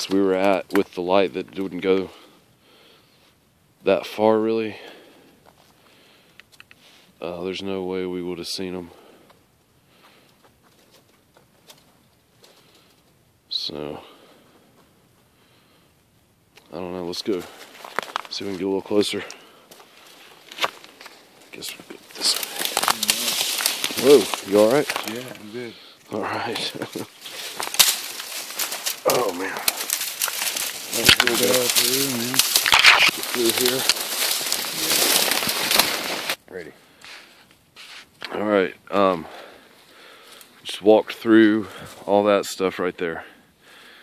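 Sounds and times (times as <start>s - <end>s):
dry grass rustling and crackling: 0.0s - 15.9s, 16.5s - 42.4s
faint ticks and snaps: 6.3s - 6.8s.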